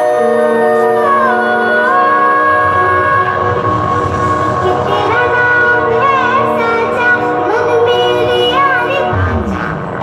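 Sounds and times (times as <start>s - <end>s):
high singing voice: 0.0s - 10.0s.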